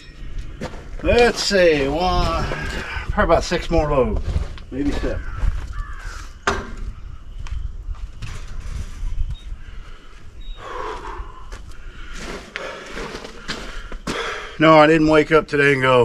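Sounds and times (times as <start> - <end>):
footsteps on gravel: 3.9 - 6.2, 10.8 - 14.3.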